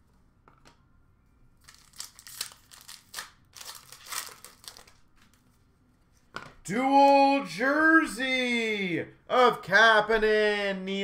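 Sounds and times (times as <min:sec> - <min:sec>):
trading cards crinkling and rustling: 0:01.6 - 0:06.4.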